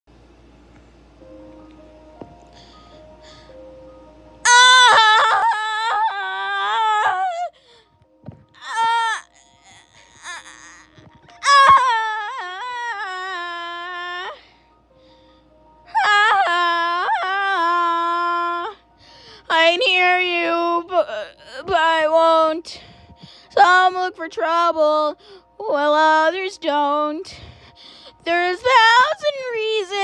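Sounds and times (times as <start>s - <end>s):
faint backing track: 0.1s - 30.0s.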